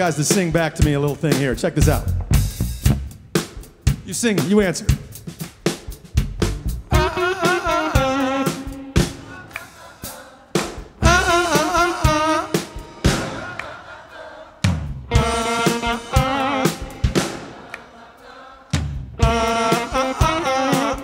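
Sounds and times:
drum hits: 0.0 - 9.4, 10.6 - 13.9
electric guitar: 15.1 - 17.4.

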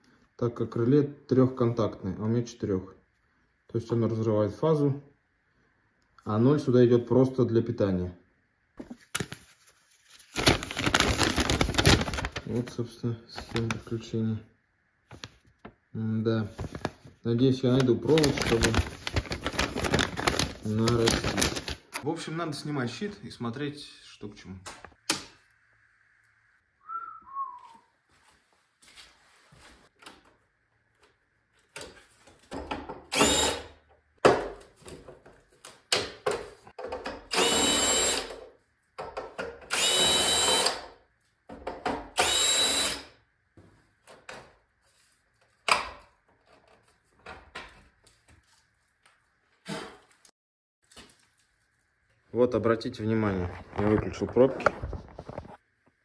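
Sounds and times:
handling noises: 16.5 - 22.0
cordless drill motor whine: 33.1 - 33.6, 37.3 - 38.3, 39.7 - 40.8, 42.2 - 43.1.

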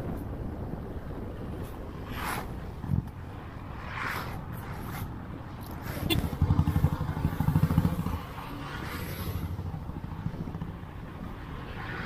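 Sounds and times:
motorcycle engine accelerating: 6.1 - 8.6.

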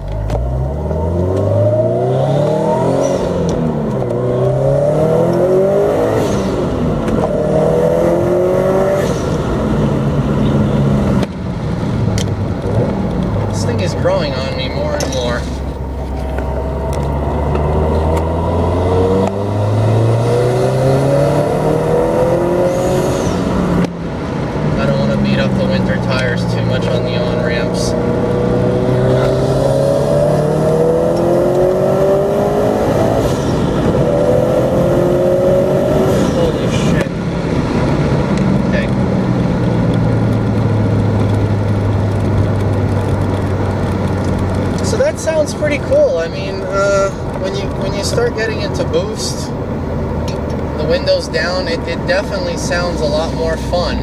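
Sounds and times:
car engine revving in cabin: 0.0 - 54.0.

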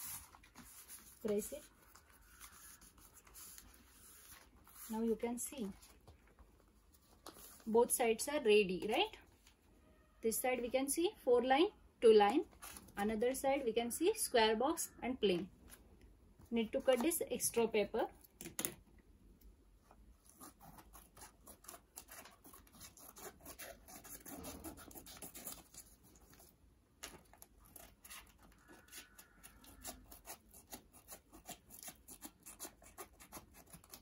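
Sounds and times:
scissors snipping paper: 20.2 - 34.0.

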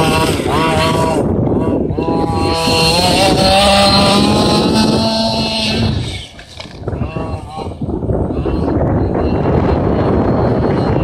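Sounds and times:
small two-stroke engine revving: 0.0 - 11.0.

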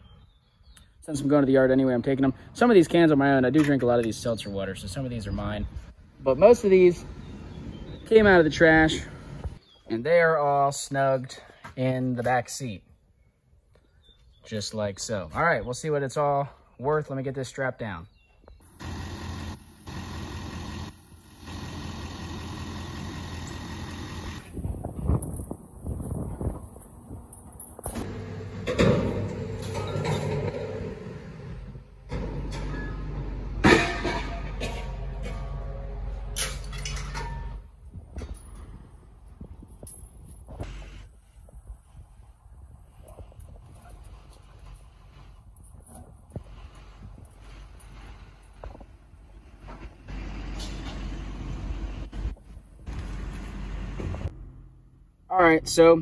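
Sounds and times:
vehicle engine running: 18.6 - 25.8
truck and machinery noise: 18.6 - 41.4, 43.4 - 55.2.

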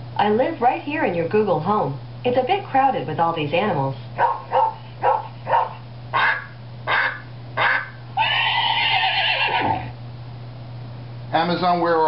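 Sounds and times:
recorded animal calls: 4.2 - 10.0.

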